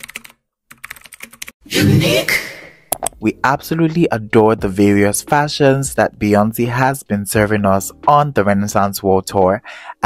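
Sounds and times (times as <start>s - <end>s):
keyboard typing clicks: 0.0s - 1.5s.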